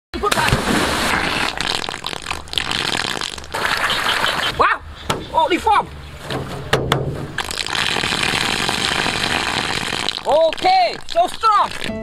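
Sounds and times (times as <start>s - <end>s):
water gushing from pipe: 0.6s - 4.6s, 7.4s - 12.0s.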